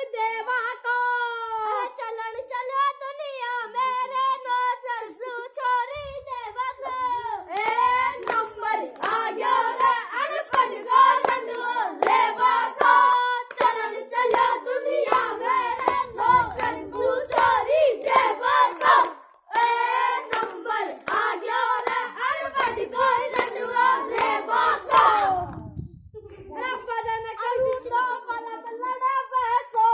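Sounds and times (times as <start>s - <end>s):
children singing folk song: 3.8s - 25.5s, 26.5s - 29.9s
hand claps: 7.5s - 25.8s.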